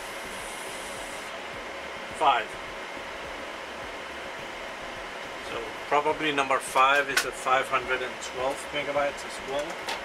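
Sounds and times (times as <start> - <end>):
cooling fans whirring: 0.0 - 10.0.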